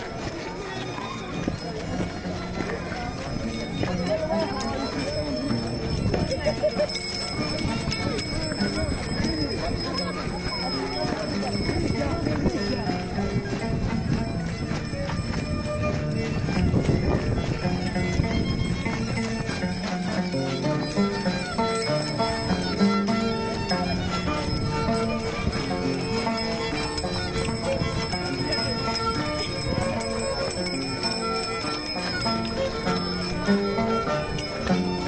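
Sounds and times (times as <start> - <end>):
voices singing and calling: 0.0 - 17.6
feet stamping on dirt: 1.0 - 35.0.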